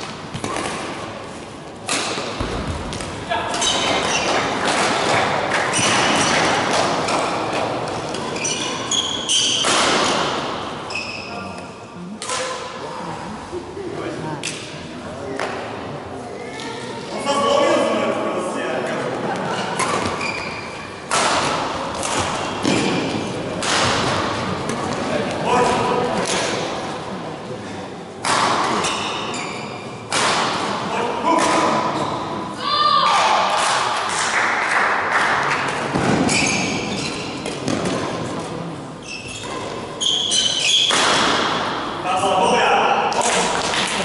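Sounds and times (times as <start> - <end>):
racket hitting shuttlecock: 1.8 - 8.2, 21.0 - 25.0, 30.1 - 30.8, 40.8 - 41.6
thuds on the court: 2.4 - 3.1
players' voices: 22.6 - 28.9.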